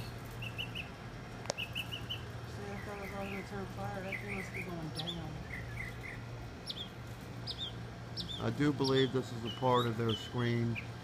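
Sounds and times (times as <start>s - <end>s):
small bird chirping: 0.0s - 11.0s
steady low hum: 0.0s - 11.0s.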